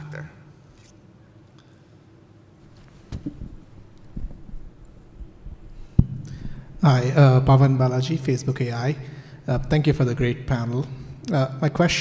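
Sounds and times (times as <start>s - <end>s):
microphone handling thumps: 2.6s - 6.8s
microphone click: 2.7s - 5.0s.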